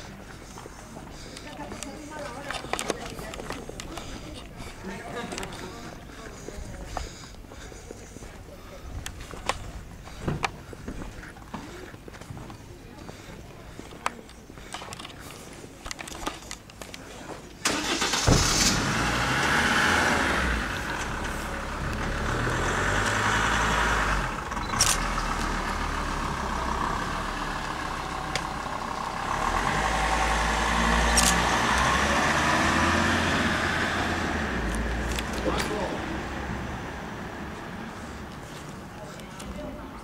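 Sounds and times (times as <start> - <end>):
tyres rolling on pavement: 0.0 - 40.0
car engine: 17.6 - 38.9.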